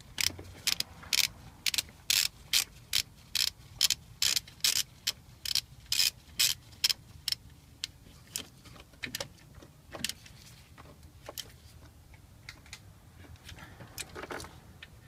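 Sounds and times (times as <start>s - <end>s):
ratchet wrench clicking: 0.0s - 8.0s.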